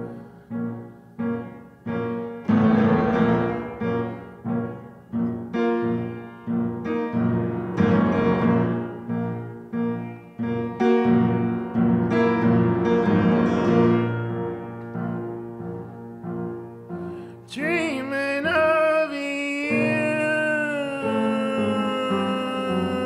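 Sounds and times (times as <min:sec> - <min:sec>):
upright piano chords: 0:00.0 - 0:23.0.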